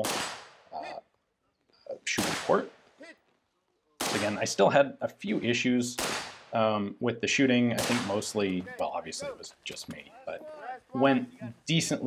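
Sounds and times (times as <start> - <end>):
rifle shot with echo: 0.0 - 0.7, 2.1 - 2.7, 4.0 - 4.4, 6.0 - 6.6, 7.8 - 8.3.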